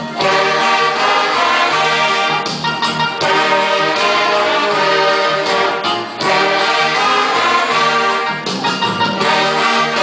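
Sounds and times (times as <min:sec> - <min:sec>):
big band playing: 0:00.0 - 0:10.0
young people singing: 0:00.2 - 0:02.5, 0:03.2 - 0:08.3.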